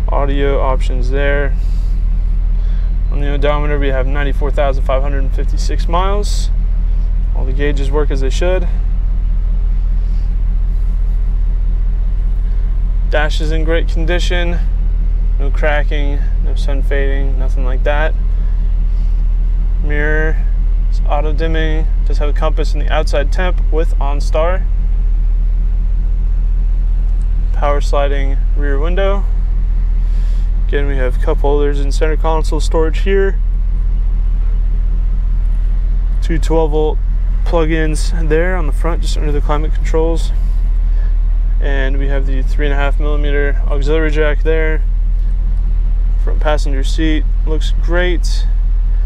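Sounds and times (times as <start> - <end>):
truck engine idling: 0.0 - 49.0.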